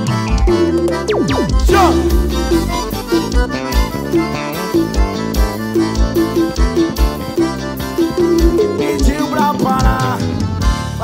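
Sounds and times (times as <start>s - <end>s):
accordion melody: 0.0s - 11.0s
steady kick drum beat: 0.2s - 7.5s.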